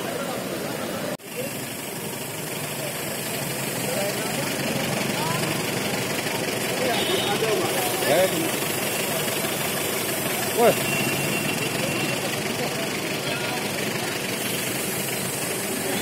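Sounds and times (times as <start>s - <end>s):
crowd chatter: 0.0s - 16.0s
vehicle engines idling: 0.0s - 16.0s.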